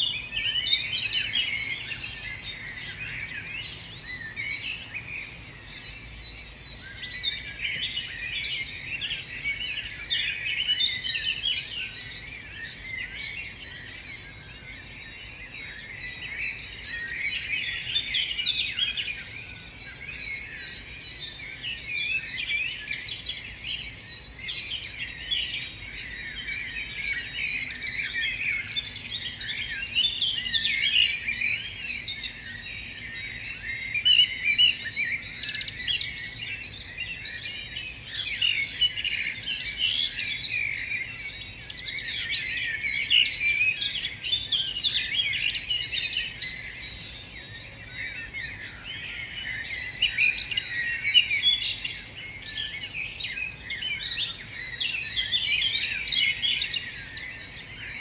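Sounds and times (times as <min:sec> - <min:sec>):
songbirds chirping: 0:00.0 - 0:58.0.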